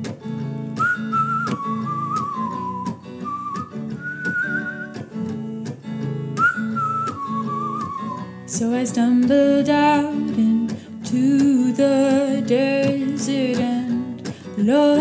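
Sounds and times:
strummed electric guitar: 0.0 - 15.0
whistled melody: 0.7 - 5.5, 6.3 - 8.6.

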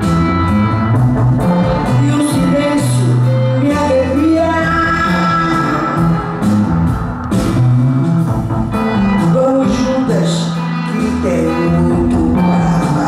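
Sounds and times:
live band music: 0.0 - 13.0
woman singing into a microphone: 1.8 - 6.2, 9.2 - 13.0.

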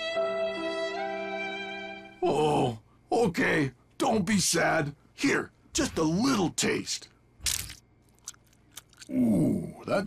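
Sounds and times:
crunchy chewing: 7.4 - 9.5
crunchy bite: 7.4 - 9.7.

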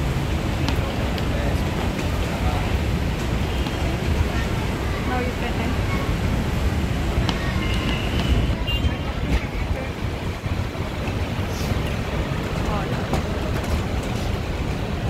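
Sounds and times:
traffic rumble: 0.0 - 15.0
faint voices: 0.2 - 15.0
wind on microphone: 5.9 - 12.0.

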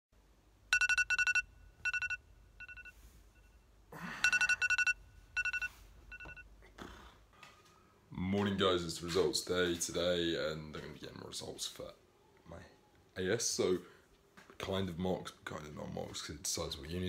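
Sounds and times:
phone alarm beeping: 0.7 - 6.5.

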